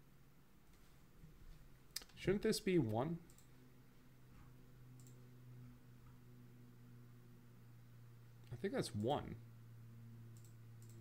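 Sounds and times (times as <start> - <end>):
steady low hum: 0.0 - 11.0
computer mouse clicks: 2.8 - 3.5, 5.0 - 5.2, 10.3 - 11.0.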